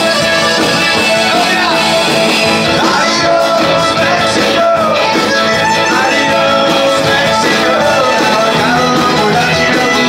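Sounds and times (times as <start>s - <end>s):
button accordion: 0.0s - 10.0s
drums: 0.0s - 10.0s
electric guitars: 0.0s - 10.0s
live band playing: 0.0s - 10.0s.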